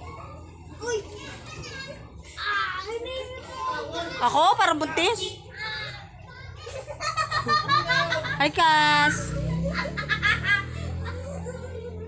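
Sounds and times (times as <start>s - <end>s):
children's voices: 0.0s - 8.4s, 9.1s - 12.0s.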